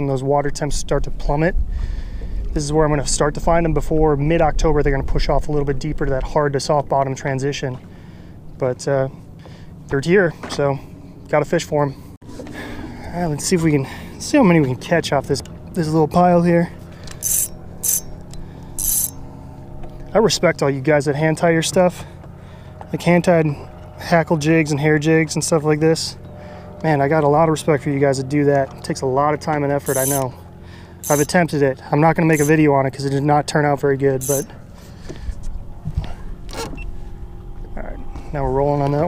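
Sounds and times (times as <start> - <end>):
low rumble: 0.8 - 6.7
low hum: 12.0 - 24.0, 34.2 - 39.0
fishing reel zipping: 17.2 - 18.1, 18.8 - 19.2, 29.8 - 30.3, 31.0 - 31.4, 32.3 - 32.6, 34.2 - 34.5.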